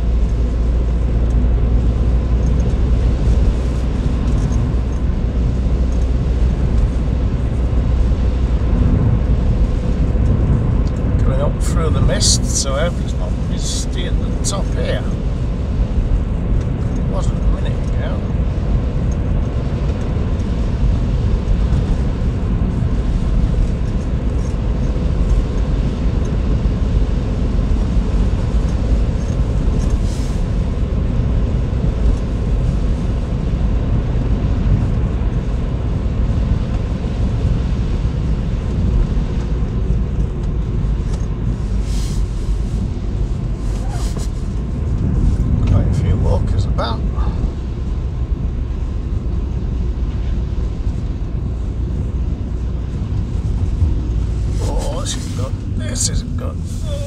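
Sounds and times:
car driving on wet road: 0.0s - 57.0s.

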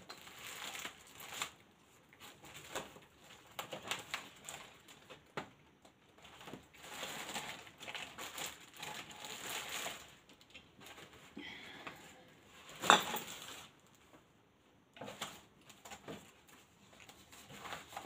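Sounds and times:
paper rustling: 0.0s - 5.4s, 6.1s - 11.4s, 15.0s - 18.0s.

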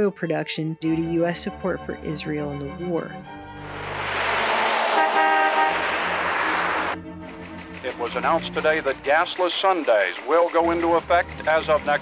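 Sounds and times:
road traffic noise: 3.4s - 12.0s
car horn honk: 4.1s - 7.0s.

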